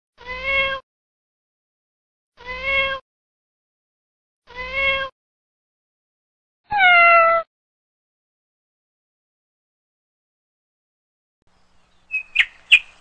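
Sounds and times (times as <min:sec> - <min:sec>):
cat meowing: 0:00.2 - 0:00.8, 0:02.4 - 0:03.0, 0:04.5 - 0:05.1, 0:06.7 - 0:07.5.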